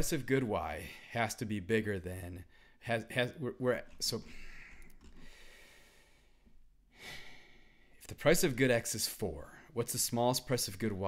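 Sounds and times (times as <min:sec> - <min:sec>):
man breathing: 0:02.5 - 0:02.8, 0:04.2 - 0:08.1.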